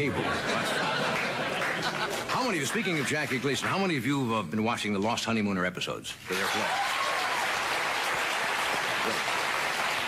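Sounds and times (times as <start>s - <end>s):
audience applauding and cheering: 0.8s - 4.0s, 6.3s - 10.0s.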